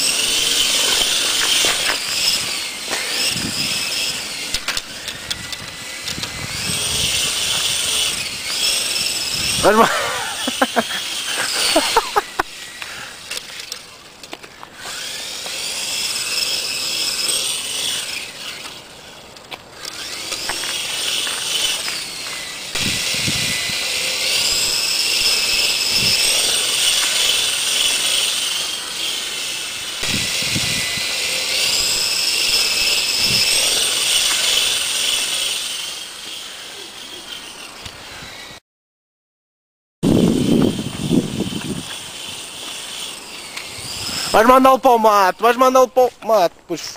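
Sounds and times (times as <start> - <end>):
model helicopter motor whining: 0.0 - 38.6, 40.0 - 46.8.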